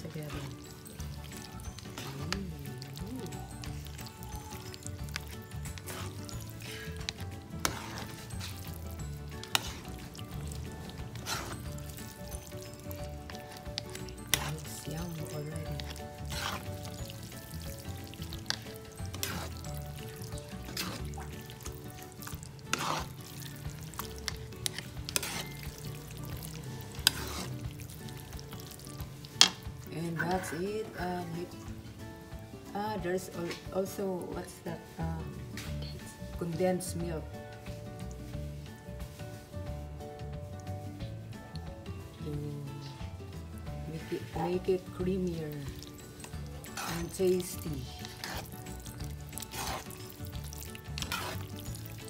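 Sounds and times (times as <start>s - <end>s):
wet stirring of spaghetti: 0.0s - 36.0s, 37.4s - 42.2s, 43.6s - 52.0s
sauce sizzling: 0.0s - 52.0s.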